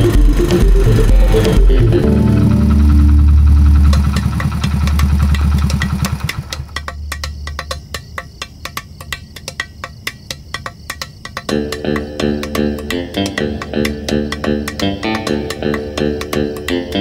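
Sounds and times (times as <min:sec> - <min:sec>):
motor scooter engine running: 0:00.0 - 0:06.8
quiet even ticking: 0:00.0 - 0:17.0.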